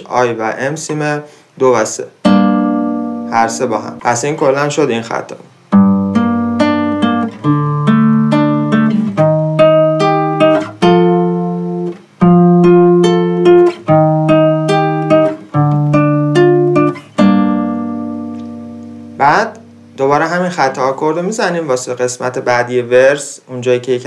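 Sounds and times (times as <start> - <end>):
classical guitar fingerpicking: 2.2 - 4.2, 5.6 - 20.0.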